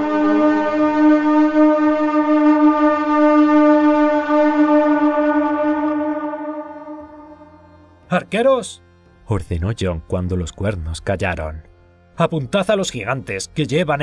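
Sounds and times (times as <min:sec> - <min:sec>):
war horn blast: 0:00.0 - 0:08.1.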